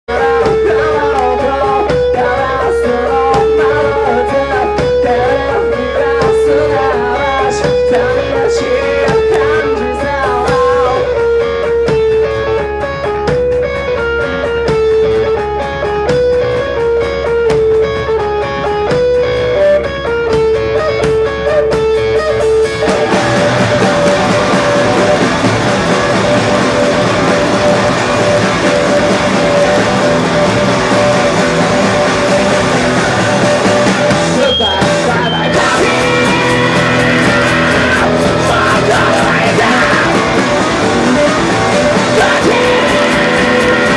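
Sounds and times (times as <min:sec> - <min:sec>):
instrumental rock band playing: 0:00.0 - 0:43.9
guitar riff: 0:00.1 - 0:43.9.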